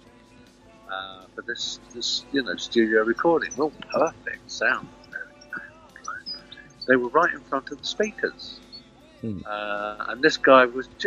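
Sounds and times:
man speaking: 0.9s - 8.6s, 9.2s - 11.0s.

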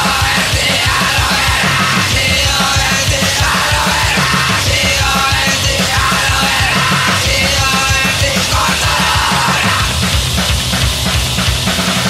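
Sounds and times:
shouted vocals: 0.0s - 10.0s
distorted guitars: 0.0s - 12.0s
fast drumbeat: 0.0s - 12.0s.

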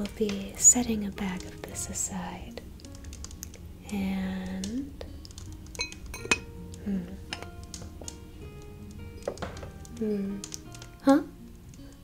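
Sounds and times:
soft background music: 0.0s - 12.0s
glass jars clinking: 5.8s - 6.5s.

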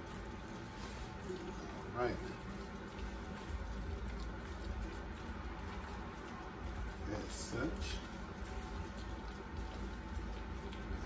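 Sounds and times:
wooden spoon stirring thick food: 0.0s - 11.0s.

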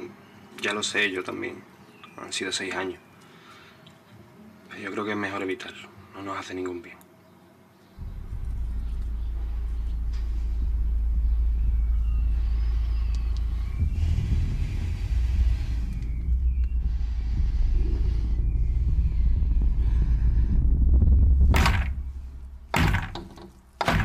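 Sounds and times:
deep rumble: 8.0s - 24.0s.

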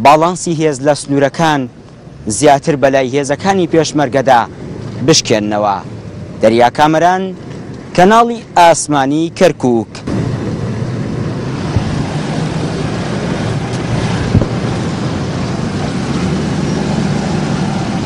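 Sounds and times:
strong wind buffeting microphone: 10.0s - 18.0s.

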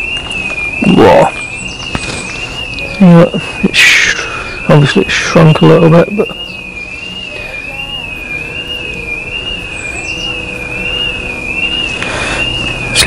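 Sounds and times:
electronic alarm warbling: 0.0s - 13.0s.

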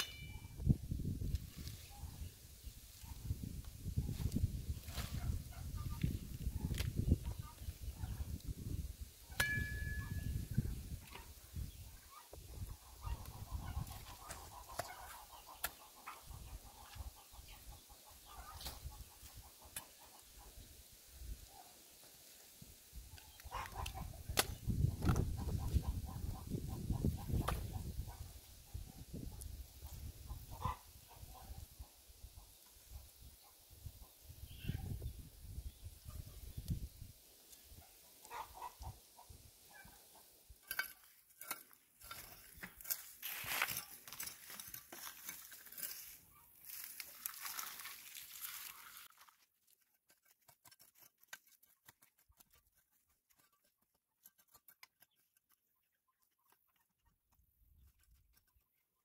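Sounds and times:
dry weeds rustling and crackling: 0.6s - 9.0s, 40.6s - 53.5s
chickens clucking: 9.3s - 20.6s, 23.4s - 28.3s, 29.0s - 33.1s, 37.8s - 40.9s.

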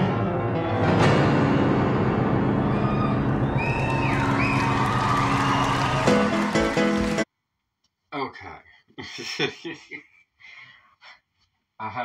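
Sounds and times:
grand piano fast run: 0.0s - 7.2s
heavy piano chords: 0.0s - 7.2s
high sliding whoop: 2.7s - 7.1s.

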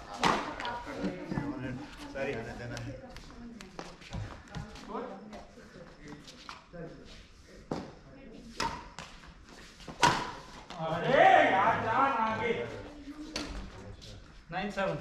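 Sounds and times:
rackets hitting shuttlecock: 0.2s - 0.8s, 8.6s - 9.1s, 9.9s - 10.5s.

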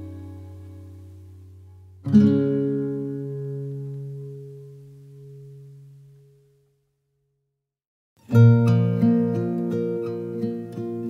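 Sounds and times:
acoustic guitar chord ringing: 0.0s - 6.7s, 8.2s - 11.0s.

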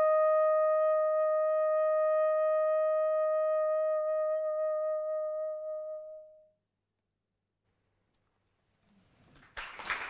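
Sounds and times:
soprano saxophone long note: 0.0s - 6.6s.

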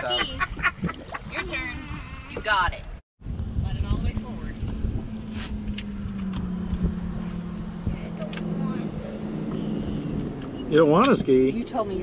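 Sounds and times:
steady low rumble: 0.2s - 10.6s.

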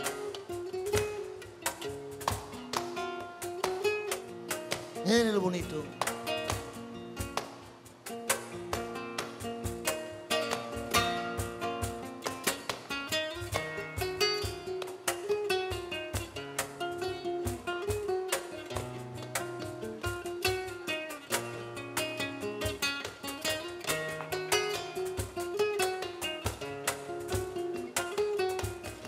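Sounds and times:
flamenco acoustic guitar: 0.0s - 29.0s
percussive guitar strikes: 0.0s - 29.0s.

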